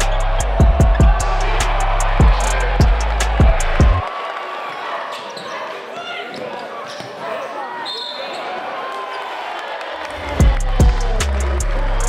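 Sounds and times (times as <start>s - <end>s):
crowd voices and chatter: 0.0s - 12.0s
sneaker squeaks: 5.0s - 8.6s.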